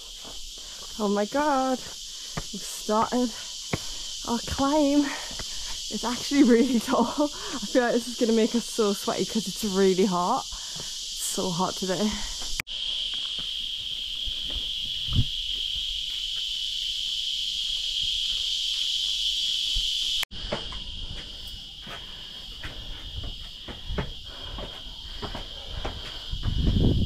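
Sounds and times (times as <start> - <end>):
footsteps on stone stairs: 0.0 - 7.7, 20.4 - 27.0
high-pitched insect chorus: 0.0 - 27.0.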